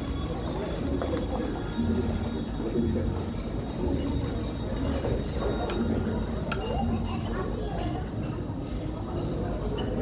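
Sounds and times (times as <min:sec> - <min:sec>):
hubbub of diners: 0:00.0 - 0:10.0
cutlery and dishes clinking: 0:03.8 - 0:10.0.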